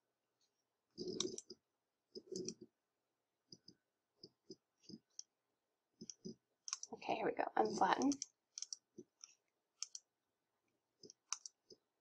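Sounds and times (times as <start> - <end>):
computer mouse clicking: 1.0 - 2.7, 3.5 - 5.3, 6.0 - 7.0, 8.0 - 10.1, 11.0 - 11.8.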